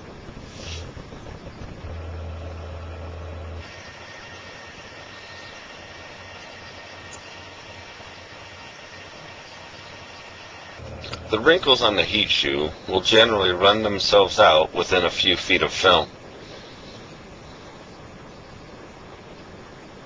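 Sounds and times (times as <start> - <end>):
faint high whine: 0.0 - 20.0
laminator motor hum: 0.0 - 20.0.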